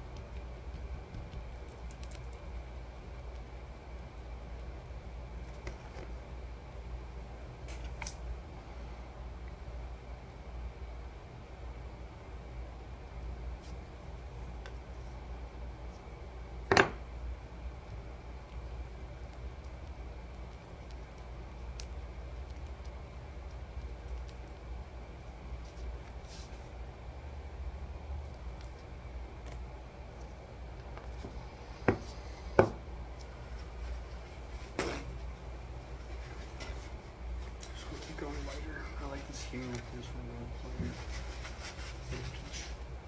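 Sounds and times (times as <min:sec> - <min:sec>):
low room hum: 0:00.0 - 0:43.0.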